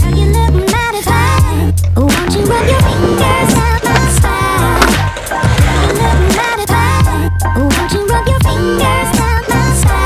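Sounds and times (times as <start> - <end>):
song with sung vocal and bass: 0.0 - 10.0
skateboard wheels rolling on concrete: 0.4 - 10.0
skateboard clacks: 1.8 - 7.1.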